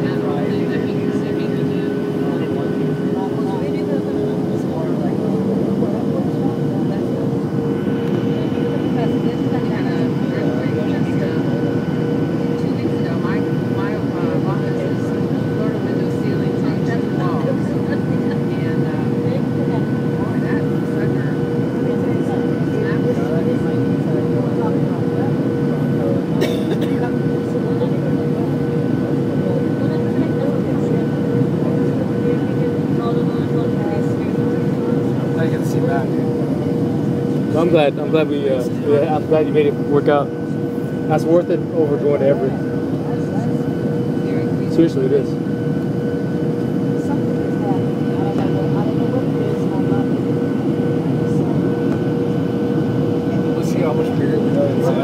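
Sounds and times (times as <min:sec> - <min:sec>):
jet engines and airflow rushing: 0:00.0 - 0:55.0.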